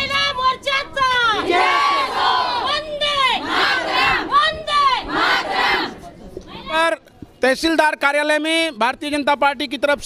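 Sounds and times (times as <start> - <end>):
crowd of women chanting slogans: 1.2 - 6.1.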